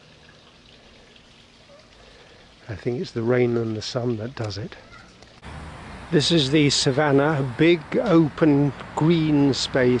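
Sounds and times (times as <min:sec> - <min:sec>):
faint outdoor hiss: 0:00.0 - 0:10.0.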